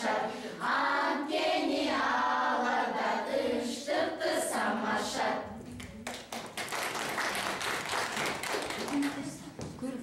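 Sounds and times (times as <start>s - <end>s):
children and women singing: 0.0s - 5.7s.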